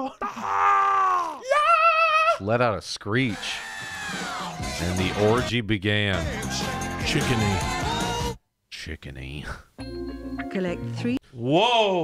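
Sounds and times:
exaggerated drawn-out vocal cries: 0:03.2 - 0:05.5.

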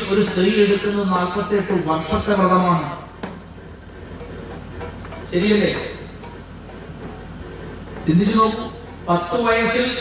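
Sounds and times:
crickets chirring: 0:00.0 - 0:10.0
low electrical hum: 0:00.0 - 0:10.0.

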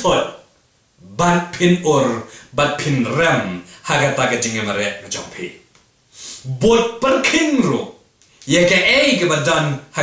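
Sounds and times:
man speaking: 0:00.0 - 0:05.7, 0:06.4 - 0:10.0.

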